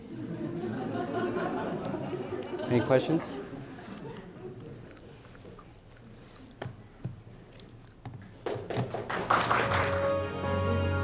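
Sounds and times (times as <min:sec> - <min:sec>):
audience clapping: 0:08.4 - 0:10.3
closing music: 0:09.6 - 0:11.0.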